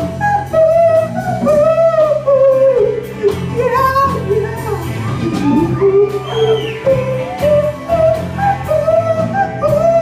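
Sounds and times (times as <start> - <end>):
high voice singing wordless melody: 0.0 - 10.0
live rock band playing: 0.0 - 10.0.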